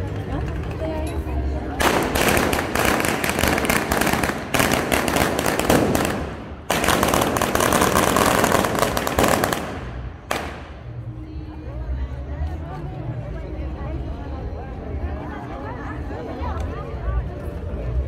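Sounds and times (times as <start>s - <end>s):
firecrackers crackling: 1.8s - 11.0s.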